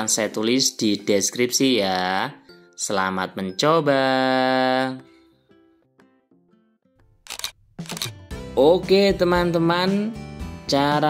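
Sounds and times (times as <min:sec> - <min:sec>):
faint background music: 0:00.0 - 0:05.8, 0:07.3 - 0:11.0
camera shutter clicks: 0:07.2 - 0:08.2.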